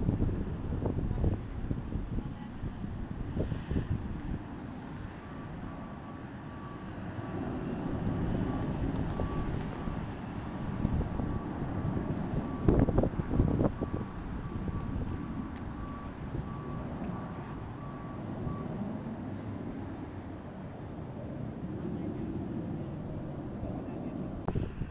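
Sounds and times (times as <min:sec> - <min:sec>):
distant jet roar: 0:00.0 - 0:24.9
wind gusts on microphone: 0:00.0 - 0:24.9.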